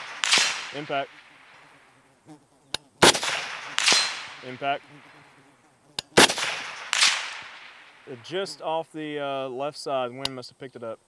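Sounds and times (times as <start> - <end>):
rifle shot echo: 0.0 - 1.9, 3.0 - 5.2, 6.2 - 8.4
sharp click: 2.7 - 4.5.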